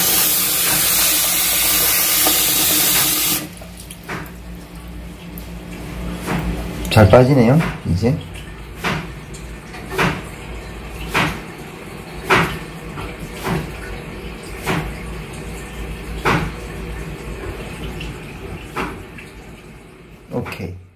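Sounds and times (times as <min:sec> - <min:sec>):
water dripping into sink: 0:00.2 - 0:20.7.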